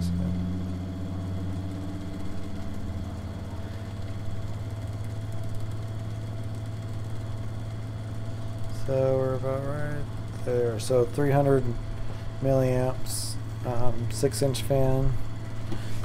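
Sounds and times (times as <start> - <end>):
pulse motor humming: 0.0 - 14.2.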